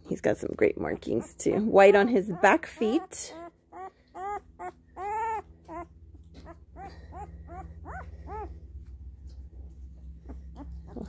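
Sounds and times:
low hum: 0.0s - 11.0s
puppy whimpering: 1.0s - 8.6s, 10.2s - 11.0s.

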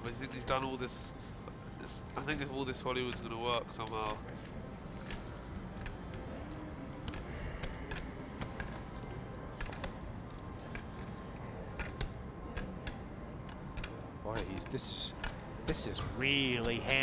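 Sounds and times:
poker chips clicking: 2.0s - 4.4s, 5.0s - 15.8s.

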